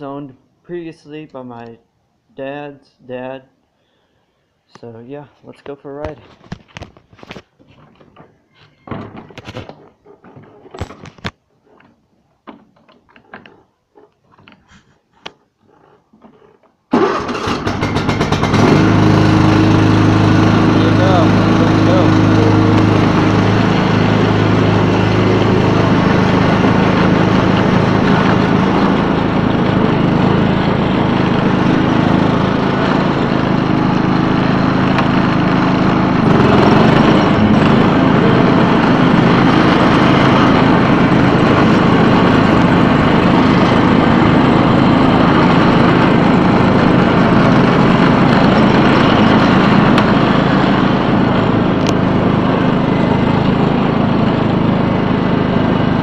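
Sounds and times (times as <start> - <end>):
lawn tractor engine running: 15.6 - 56.0.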